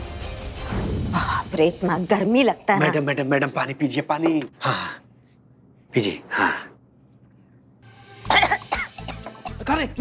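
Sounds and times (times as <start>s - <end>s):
background music: 0.0s - 3.3s, 7.8s - 10.0s
woman coughing: 8.3s - 9.6s.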